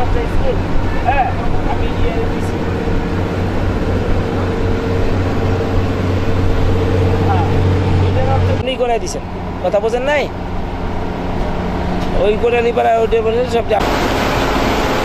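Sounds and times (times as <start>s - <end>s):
boat engine low hum: 0.0s - 15.0s.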